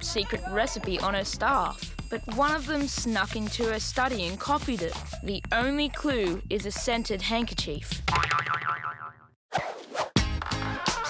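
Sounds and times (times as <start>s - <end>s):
cartoon spring boing: 8.1s - 9.3s.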